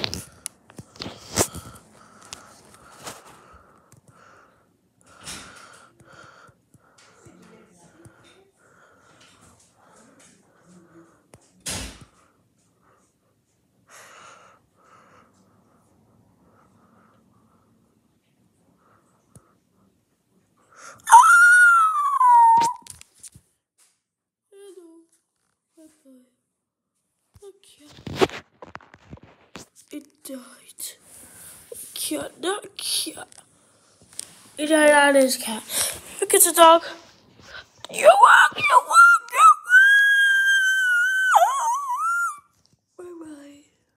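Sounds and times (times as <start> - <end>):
dog whining: 21.1 - 22.9, 40.9 - 42.4.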